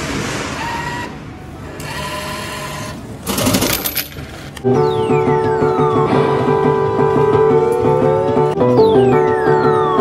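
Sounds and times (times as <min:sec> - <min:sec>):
banknote acceptor motor whirring: 0:00.6 - 0:03.5.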